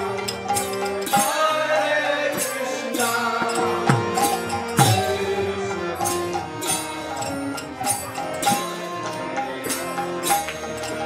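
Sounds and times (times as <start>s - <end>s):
harmonium: 0.0s - 11.0s.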